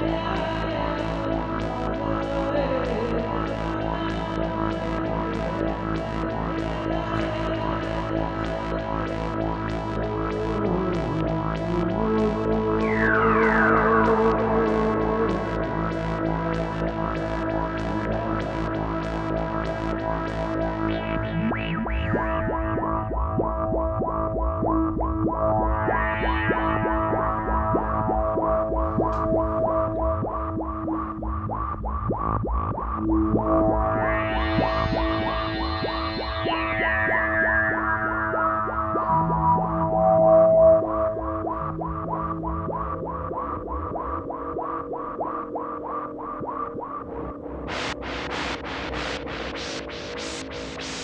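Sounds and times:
synthesizer drone: 0.0s - 51.0s
rising synth sweeps: 33.3s - 44.4s
synthesizer short swooping notes: 39.0s - 42.4s
rhythmic bursts of synth hiss: 47.7s - 51.0s.

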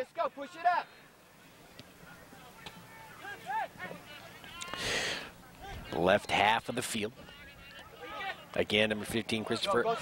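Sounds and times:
distant shouts: 0.0s - 8.6s.

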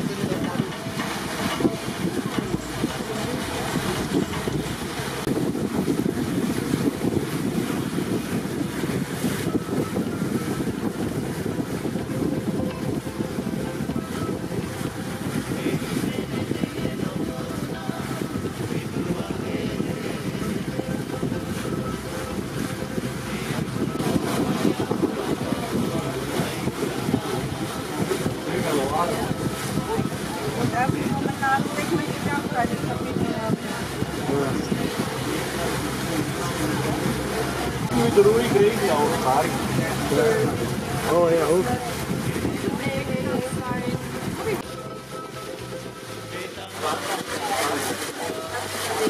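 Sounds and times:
wind rushing over microphone: 0.0s - 46.0s
low rumble of boat: 0.0s - 49.0s.

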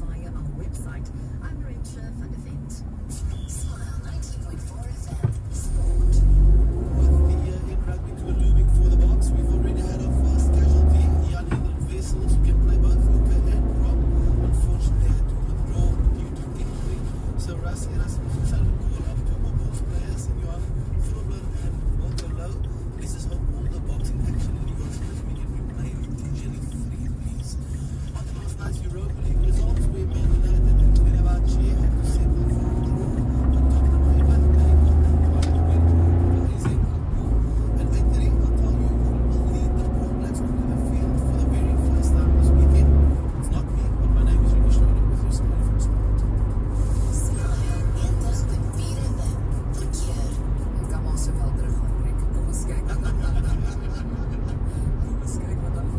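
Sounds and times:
car engine and road rumble: 0.0s - 55.9s
car radio voices and music: 0.0s - 55.9s.

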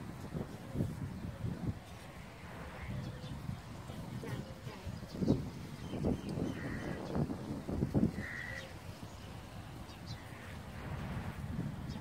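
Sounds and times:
crows cawing: 6.5s - 7.1s, 8.1s - 8.8s.

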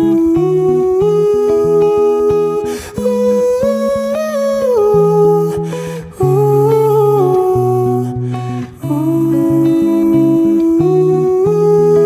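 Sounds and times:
man singing wordless phrases: 0.0s - 12.0s
plucked acoustic guitar: 0.0s - 12.0s
man breathing: 2.6s - 3.1s, 5.5s - 6.2s, 8.2s - 8.8s.

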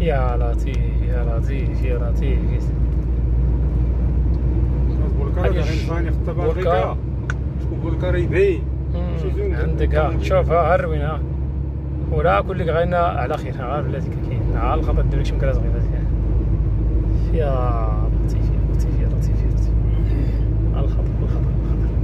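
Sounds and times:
vehicle cab rumble in sandstorm: 0.0s - 22.0s.

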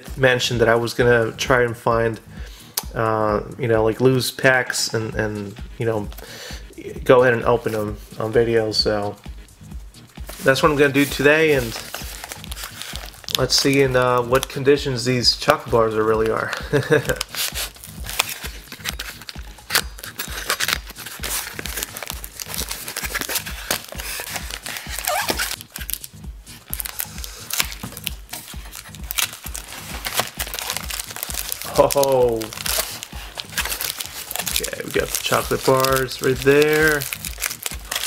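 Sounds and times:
plastic wrap crinkling: 10.3s - 14.9s, 15.6s - 38.0s.

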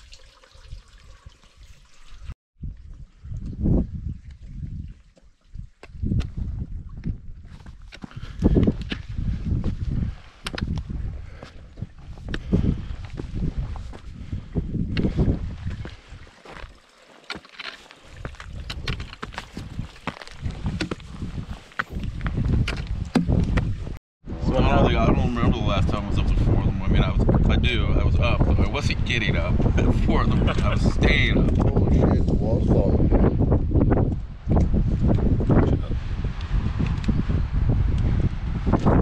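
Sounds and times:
wind rumbling on microphone: 1.6s - 16.7s, 18.0s - 39.0s
footsteps on gravel and snow: 15.1s - 23.8s.

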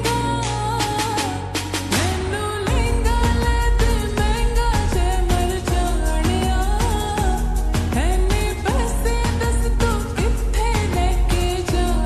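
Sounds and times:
steady beat with heavy bass: 0.0s - 12.0s
sung vocal line: 0.0s - 12.0s.

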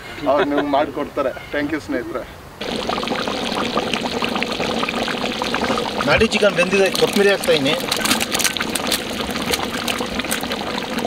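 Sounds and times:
chicken sizzling and crackling: 2.6s - 11.0s
water poured into hot pan: 2.6s - 11.0s.

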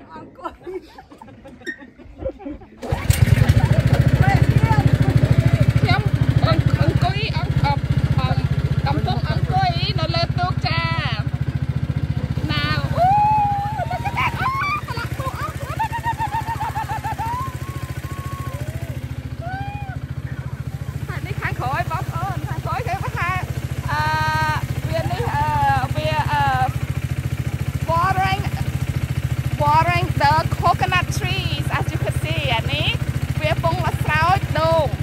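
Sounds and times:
motorboat engine running: 2.8s - 35.0s
people talking: 3.4s - 11.3s, 12.4s - 17.3s, 19.4s - 26.8s, 27.8s - 28.7s, 29.6s - 35.0s.

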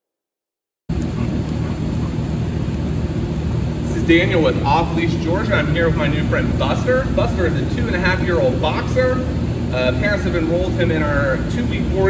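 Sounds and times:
warehouse background rumble and hiss: 0.9s - 12.0s.

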